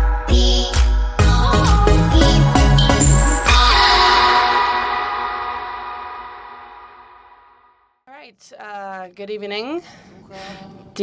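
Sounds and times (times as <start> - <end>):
electronic jingle chord: 2.7 - 5.1.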